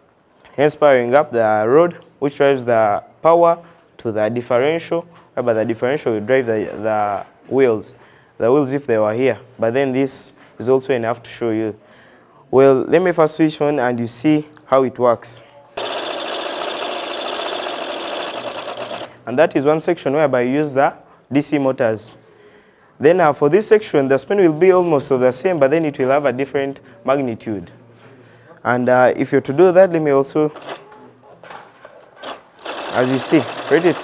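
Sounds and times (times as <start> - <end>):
model engine motor whirring: 15.8 - 19.1.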